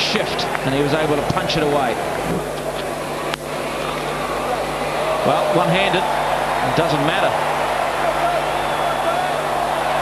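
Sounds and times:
stadium crowd murmur: 0.0 - 10.0.

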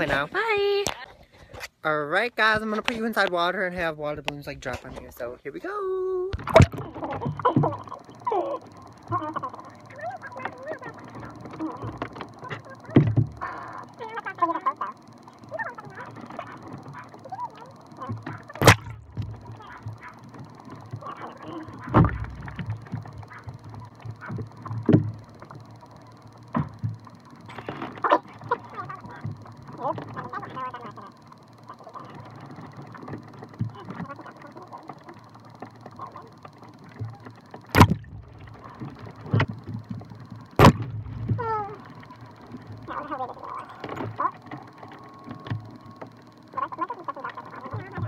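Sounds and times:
water balloons splashing: 18.6 - 19.4.

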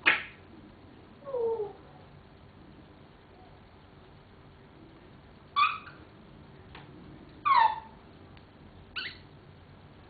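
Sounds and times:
parrot squawking: 5.6 - 6.0, 7.4 - 8.0, 9.0 - 9.2.

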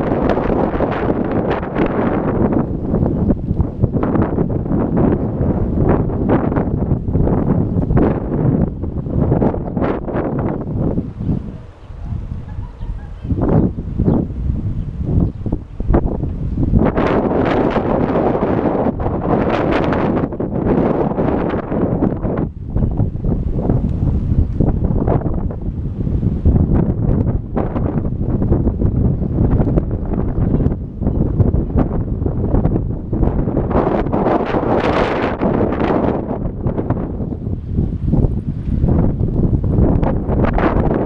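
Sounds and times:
wind rushing over microphone: 0.0 - 41.0.

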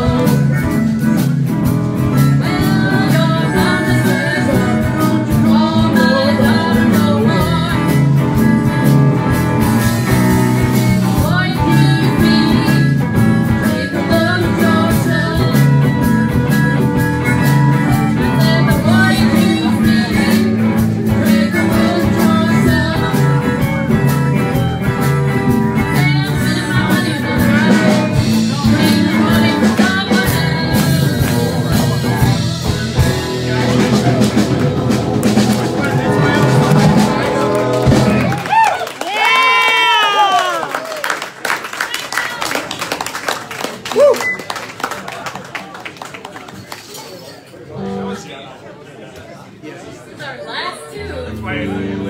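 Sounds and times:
electric guitars: 0.0 - 40.6, 47.8 - 48.2, 51.0 - 52.0
bass: 0.0 - 41.0, 51.1 - 52.0
drums: 0.0 - 41.3.

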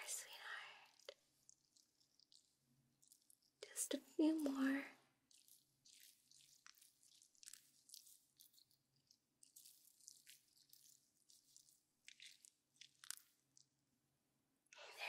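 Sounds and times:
close crinkling and crackling: 0.0 - 13.8.

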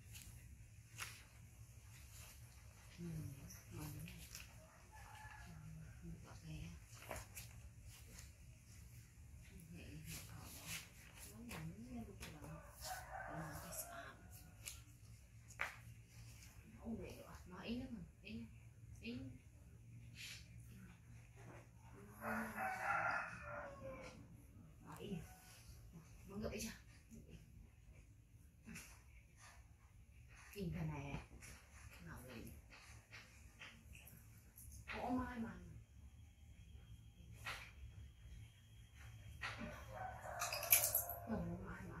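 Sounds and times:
book pages rustling: 0.0 - 4.6, 6.3 - 13.6.

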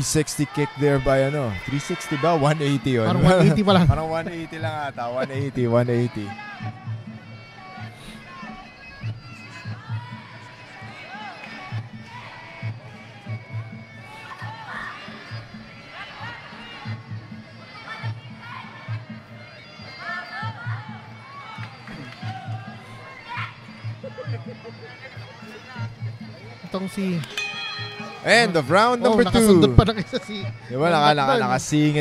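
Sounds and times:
crowd voices: 0.0 - 32.0
steady drum beat: 3.1 - 5.5
shrill reedy oboe melody: 23.0 - 32.0.

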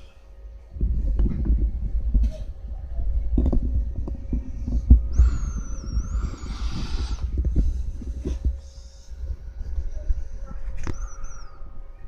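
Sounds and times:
camera handling rumble and knocks: 0.8 - 2.6, 3.2 - 6.1
hiss: 5.1 - 7.4.

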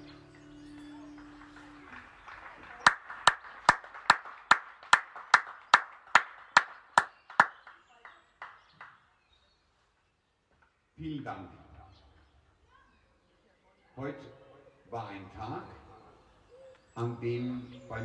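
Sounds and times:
person clapping hands: 0.7 - 9.0.

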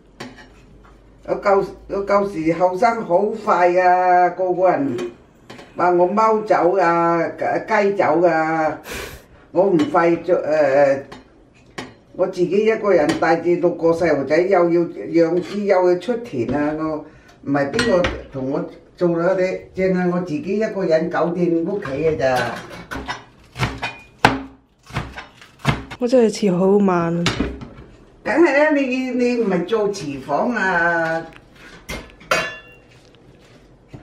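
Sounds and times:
person speaking: 26.0 - 27.4
person talking: 26.0 - 27.5.

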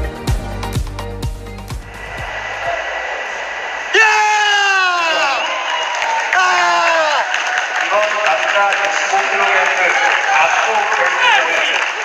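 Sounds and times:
arena crowd noise: 1.9 - 12.0
person shouting: 4.0 - 5.4.

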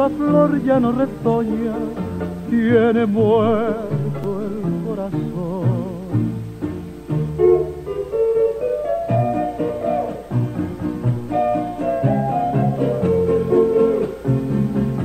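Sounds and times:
bowed strings melody: 0.0 - 15.0
guitars: 0.0 - 15.0.

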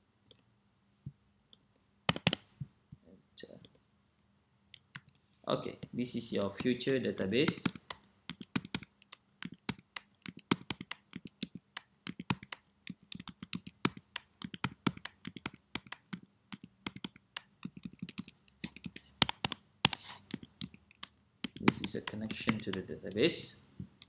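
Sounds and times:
computer keyboard clicking: 2.1 - 2.4, 6.6 - 22.9.

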